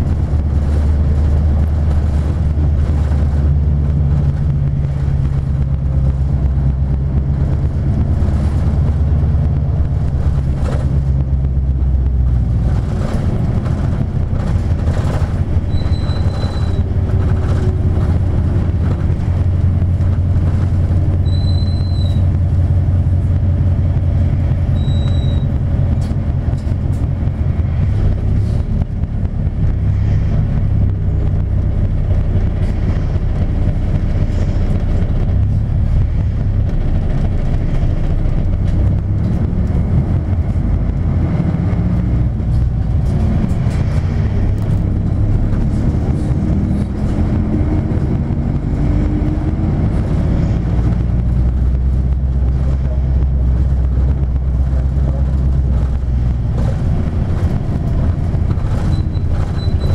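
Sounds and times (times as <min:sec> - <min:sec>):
knocks and rattles: 0:00.0 - 0:21.3
bus engine rumble: 0:00.0 - 0:59.9
road noise: 0:00.0 - 0:59.9
brief high squeaks: 0:15.7 - 0:16.9, 0:21.2 - 0:22.3, 0:24.7 - 0:25.5, 0:58.8 - 0:59.9.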